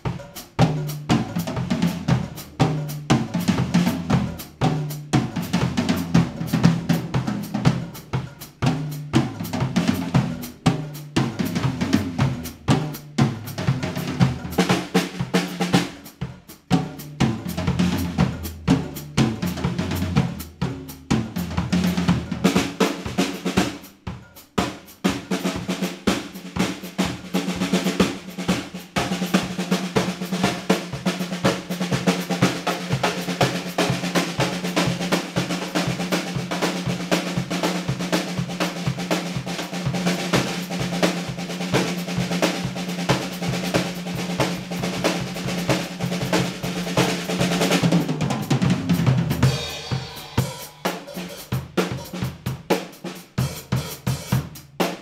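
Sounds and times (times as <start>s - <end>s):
drum kit played with sticks: 0.0s - 55.0s.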